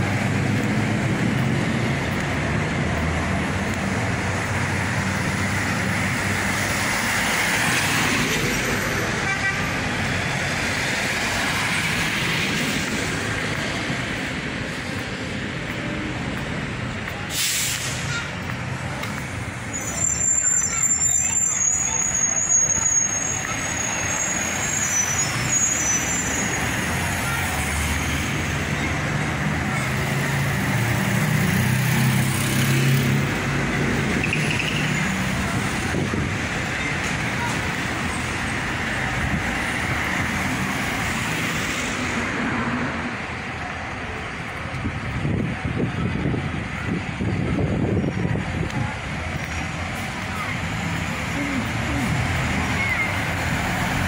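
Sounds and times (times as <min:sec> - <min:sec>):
road traffic passing: 0:00.0 - 0:54.0
air brake hiss: 0:17.3 - 0:18.2
bus brake squeal: 0:19.6 - 0:27.0
heavy engine hum: 0:41.9 - 0:54.0.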